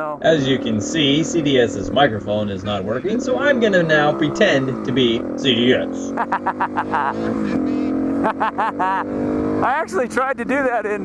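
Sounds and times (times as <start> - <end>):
dirt bike engine running: 0.2 - 11.0
person laughing: 5.7 - 9.2.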